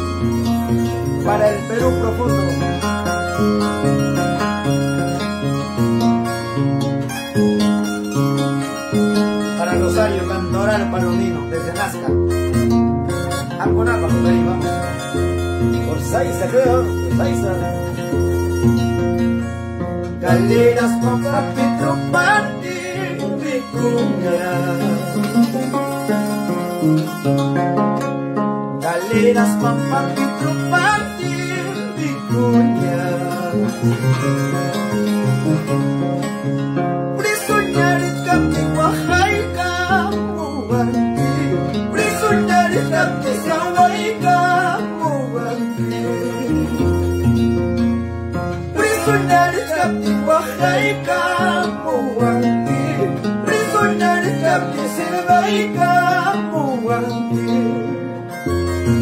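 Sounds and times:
man singing: 0.0 - 3.1, 9.3 - 18.1, 20.1 - 26.2, 28.8 - 34.8, 37.1 - 47.5, 48.6 - 59.0
harp plucked: 0.0 - 59.0
violin melody: 0.0 - 59.0.

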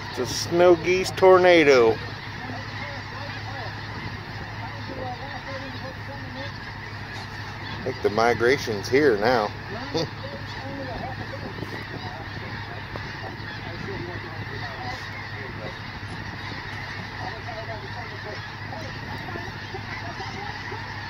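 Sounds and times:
geese honking: 0.0 - 21.0
steady low hum: 0.0 - 21.0.

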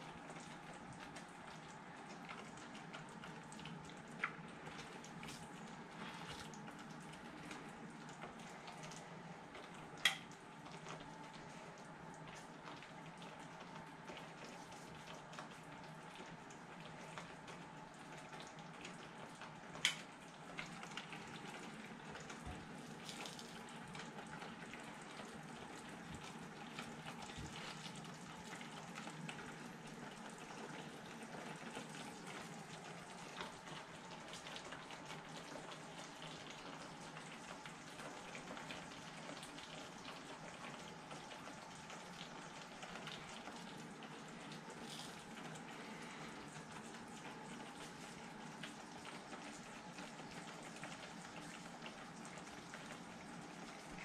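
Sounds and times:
sauce bubbling in a pan: 0.0 - 54.0.

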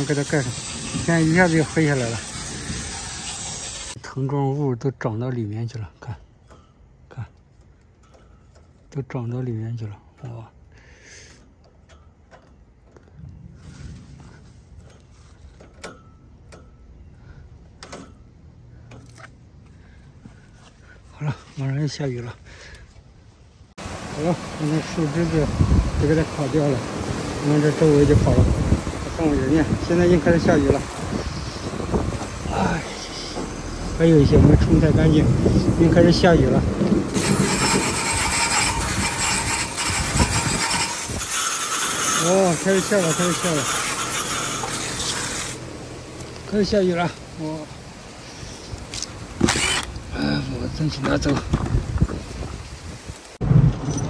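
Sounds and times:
hose water spraying: 0.0 - 4.0, 23.8 - 36.2, 36.8 - 45.6
rustling of dry vines: 12.2 - 15.7
low rumble: 53.4 - 54.0.

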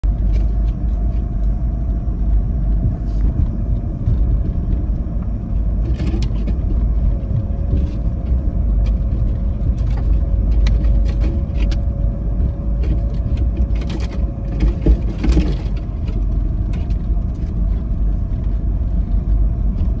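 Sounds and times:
faint steady whine: 0.0 - 20.0
vehicle engine and tyres rumbling: 0.0 - 20.0.

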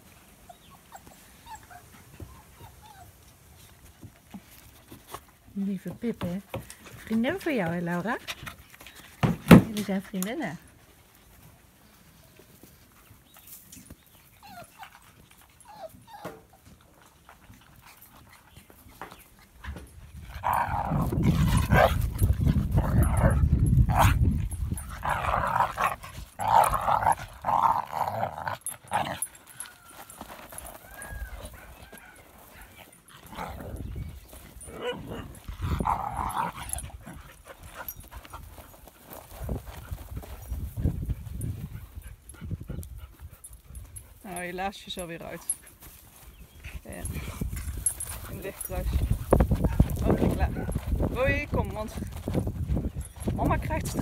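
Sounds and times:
dogs yapping and growling: 0.3 - 5.2, 13.8 - 40.3, 47.2 - 51.1.

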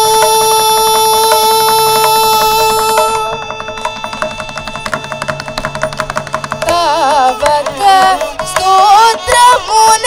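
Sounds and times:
hand drum strokes: 0.0 - 10.0
woman singing a long note: 6.6 - 10.0.

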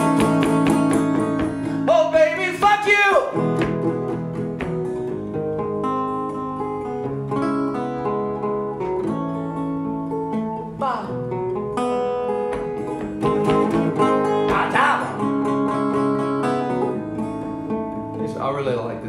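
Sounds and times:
acoustic guitar strumming: 0.0 - 19.0
foot stomping on wooden board: 3.5 - 5.1, 12.5 - 14.8.

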